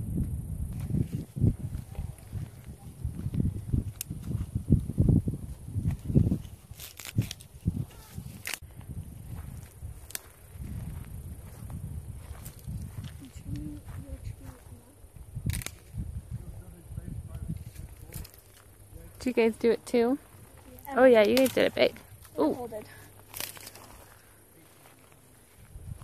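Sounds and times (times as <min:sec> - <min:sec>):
wind buffeting microphone: 0:00.0 - 0:24.7, 0:25.4 - 0:26.0.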